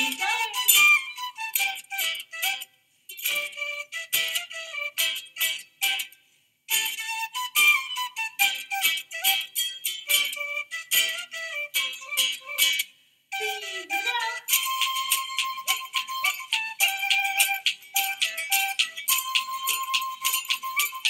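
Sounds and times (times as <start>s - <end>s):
flute dance music with beat: 0.0s - 2.6s, 3.3s - 6.0s, 6.7s - 12.8s, 13.4s - 21.0s.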